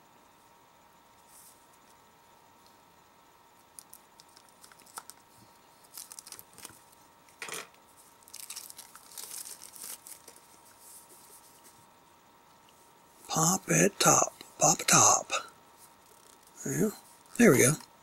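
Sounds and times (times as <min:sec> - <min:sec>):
small crackles: 0:03.6 - 0:11.8, 0:15.8 - 0:16.6
plastic wrap crinkling and tearing: 0:03.8 - 0:05.2, 0:05.8 - 0:06.8, 0:08.2 - 0:10.6.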